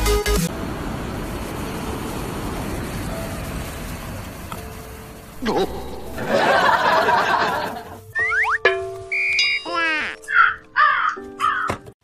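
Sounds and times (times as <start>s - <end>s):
steady tones and sliding pitches: 5.4s - 8.0s
crow cawing: 10.3s - 11.7s.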